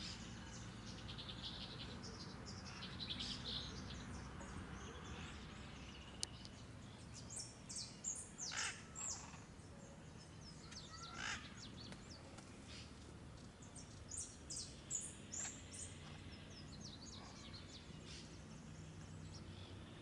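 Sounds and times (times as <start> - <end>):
birds chirping: 0.0 - 20.0.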